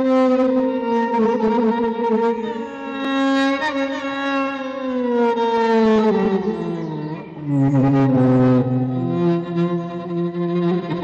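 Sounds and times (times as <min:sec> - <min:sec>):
bowed string melody sliding down: 0:00.9 - 0:11.0
low sustained string note: 0:06.1 - 0:11.0.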